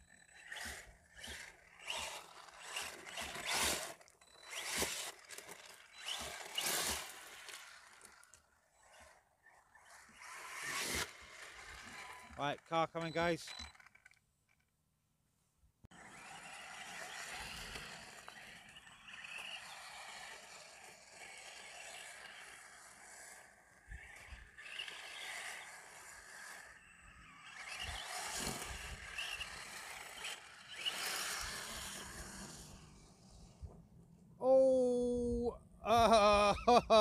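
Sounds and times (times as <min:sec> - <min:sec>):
rc truck electric motor: 0:00.0 - 0:14.7, 0:15.9 - 0:34.2
tyres on gravel: 0:00.3 - 0:09.0, 0:16.0 - 0:33.2.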